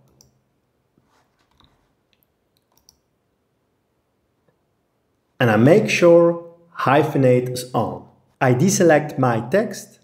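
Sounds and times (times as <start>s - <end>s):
faint computer mouse clicks: 1.5s - 3.0s.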